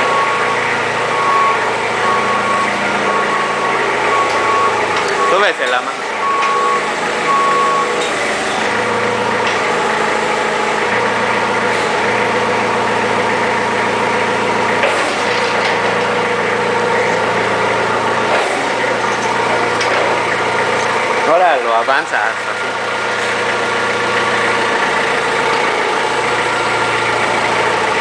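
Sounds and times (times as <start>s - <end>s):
forklift alarm beeps: 0.0s - 8.2s
forklift engine idling: 0.0s - 28.0s.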